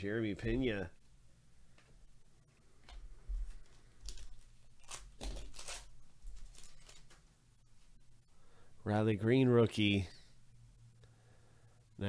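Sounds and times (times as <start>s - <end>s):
foil wrapper crinkling and tearing: 3.7s - 7.3s.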